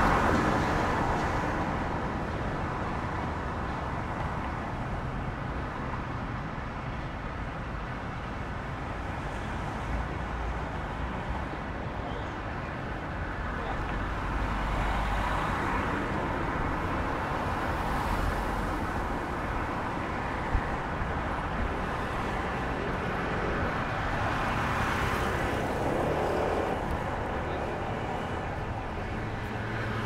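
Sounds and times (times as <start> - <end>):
traffic driving past: 12.6 - 30.0.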